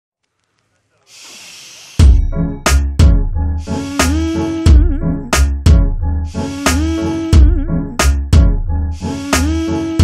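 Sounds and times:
steady high hiss: 0.9 - 2.0.

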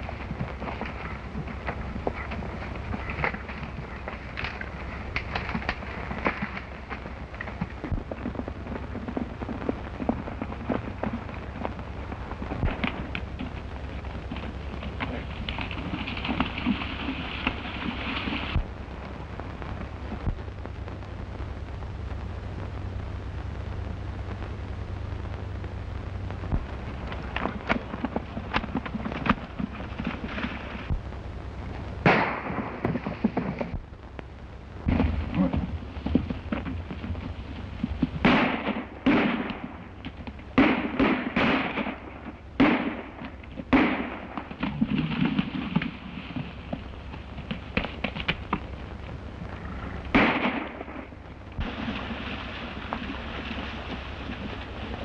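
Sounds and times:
film soundtrack hiss and hum: 0.0 - 55.0
gunshots with echo: 32.0 - 32.8, 38.2 - 39.7, 40.6 - 44.3, 50.1 - 51.9.

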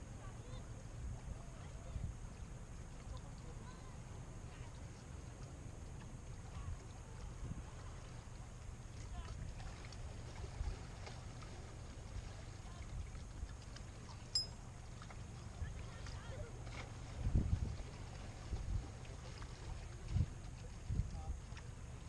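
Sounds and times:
wind rumble on microphone: 5.8 - 13.6, 15.4 - 22.0.

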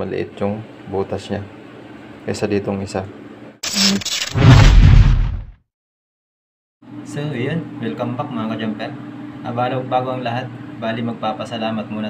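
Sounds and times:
rush of noise: 3.7 - 5.5
heavy low boom: 4.4 - 5.5.

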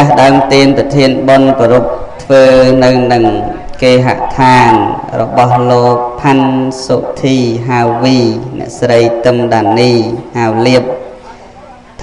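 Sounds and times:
man chanting: 0.0 - 11.3.

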